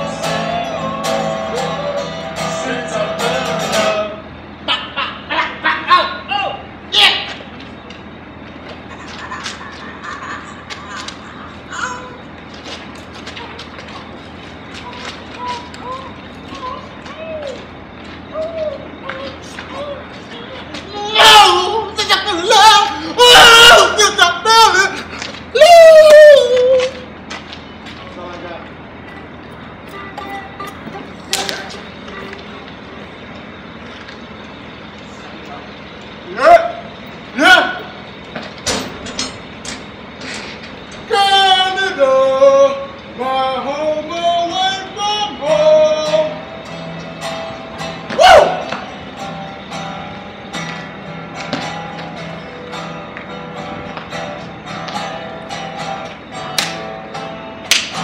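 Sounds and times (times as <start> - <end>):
outdoor background noise: 0.0 - 58.0
urban background noise: 0.0 - 58.0
loud rising shout: 25.5 - 27.0, 48.1 - 48.9.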